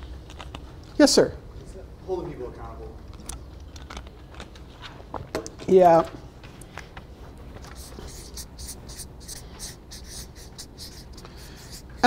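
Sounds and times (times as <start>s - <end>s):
marker pen scratching on paper: 7.6s - 12.0s.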